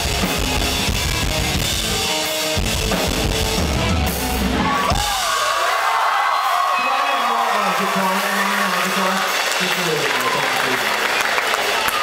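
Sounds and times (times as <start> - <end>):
live rock song: 0.0 - 5.4
crowd cheering and whooping: 4.0 - 12.0.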